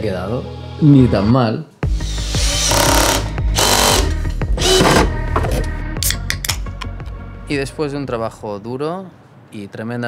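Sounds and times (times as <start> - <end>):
background music: 0.0 - 9.5
cordless drill driving a screw: 2.0 - 5.1.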